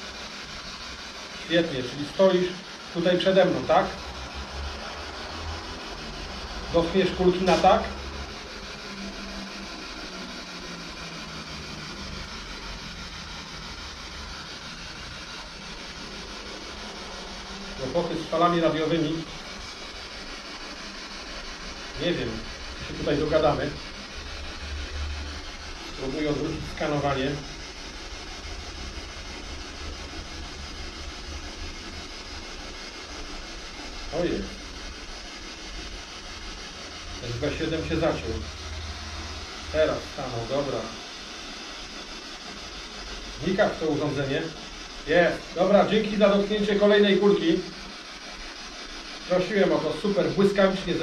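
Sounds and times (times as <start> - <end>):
static hiss: 0.0 - 51.0.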